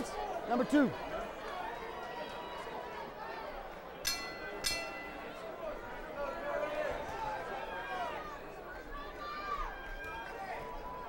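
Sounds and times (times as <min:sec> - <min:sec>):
crowd chatter and shouting: 0:00.0 - 0:11.0
boxing ring bell: 0:04.0 - 0:05.4.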